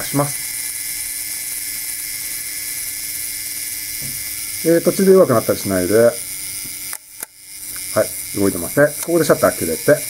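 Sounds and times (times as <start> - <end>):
clockwork self-timer buzzing: 0.0 - 10.0.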